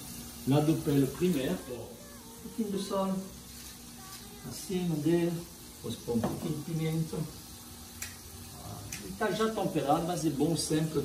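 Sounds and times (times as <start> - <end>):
potatoes sizzling in a frying pan: 0.0 - 11.0.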